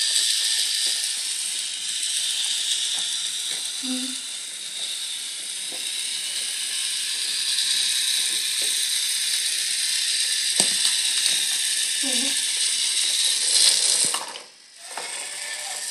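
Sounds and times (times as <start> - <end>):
toy train motor whirring: 0.0 - 15.9.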